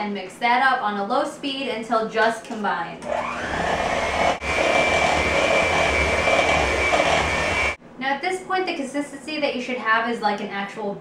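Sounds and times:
electric mixer motor whine: 3.0s - 7.8s.

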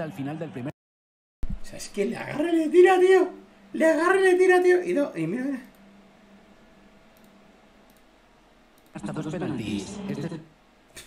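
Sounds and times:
steady low hum: 1.4s - 11.0s
computer mouse clicking: 7.2s - 8.1s, 8.7s - 9.0s.

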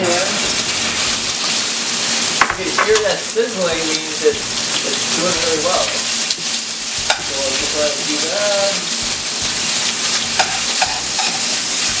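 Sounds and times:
chicken sizzling in hot oil: 0.0s - 12.0s
spatula tapping a pan: 7.0s - 7.3s, 10.4s - 11.4s.

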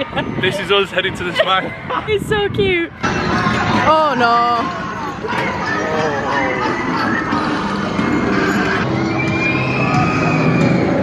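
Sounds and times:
roller coaster train on steel track: 0.0s - 11.0s
riders screaming: 5.7s - 11.0s.

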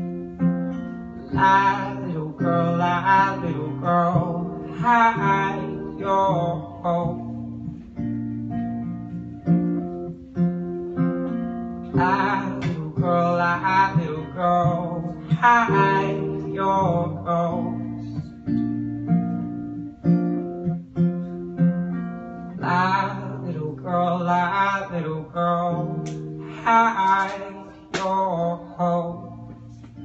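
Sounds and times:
acoustic guitar playing: 0.0s - 30.0s
man singing: 1.2s - 7.4s, 11.9s - 18.3s, 22.6s - 30.0s.

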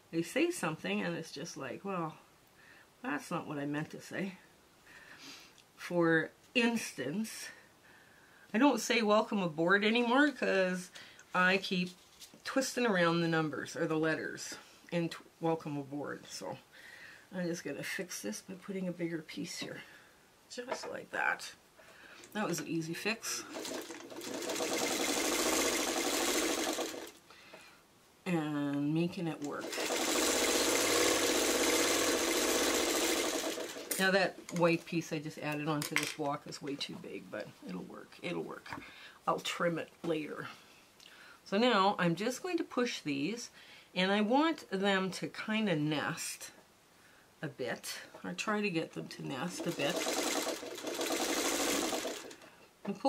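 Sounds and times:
sewing machine stitching: 23.4s - 27.2s, 29.4s - 34.1s, 49.4s - 52.4s.

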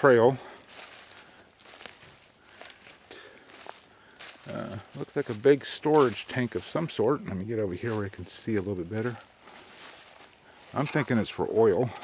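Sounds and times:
footsteps through dry leaves: 0.0s - 12.0s.

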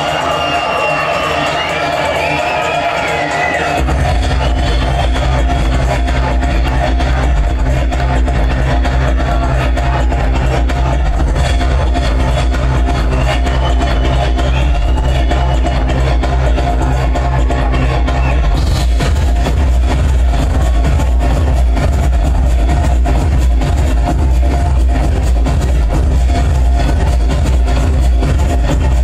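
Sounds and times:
electronic dance music: 0.0s - 29.0s
deep pulsing bass line: 3.8s - 29.0s.

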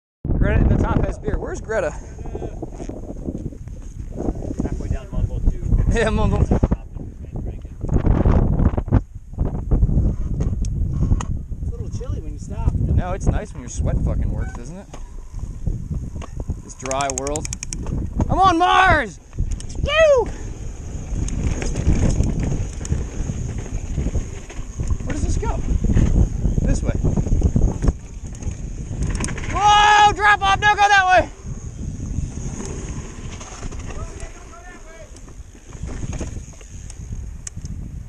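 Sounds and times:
wind buffeting microphone: 0.2s - 38.0s
mountain bike rolling on rock: 0.5s - 6.8s, 11.8s - 38.0s
bike clicks and knocks: 16.1s - 18.3s, 20.9s - 26.3s, 27.4s - 29.6s, 35.1s - 37.8s.

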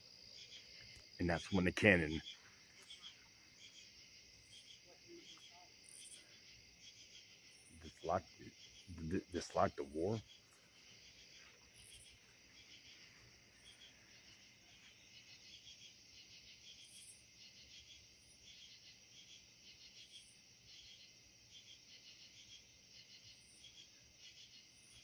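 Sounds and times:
crickets chirping: 0.0s - 25.0s
higher insect chirp: 0.0s - 25.0s.

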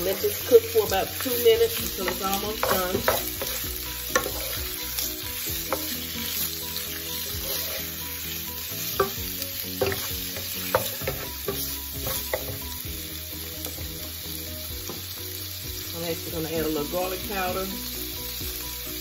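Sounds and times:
wooden spoon scraping a pan: 0.0s - 9.2s, 9.8s - 12.7s
food sizzling in hot oil: 0.0s - 19.0s.

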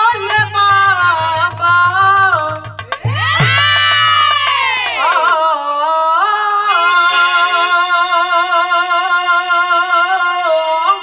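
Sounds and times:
person singing long note: 5.0s - 11.0s.

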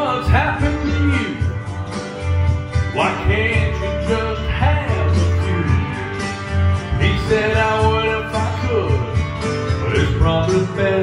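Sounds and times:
man singing into microphone: 0.0s - 1.5s, 2.9s - 6.0s, 6.9s - 11.0s
country karaoke backing track: 0.0s - 11.0s.

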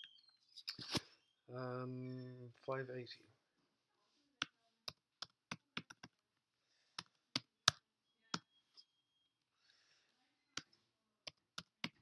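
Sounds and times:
computer keyboard keystrokes: 4.4s - 6.2s.

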